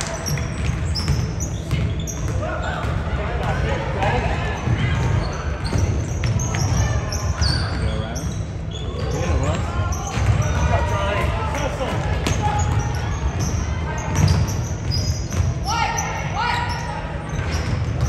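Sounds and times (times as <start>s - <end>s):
sneakers squeaking on court: 0.0s - 18.0s.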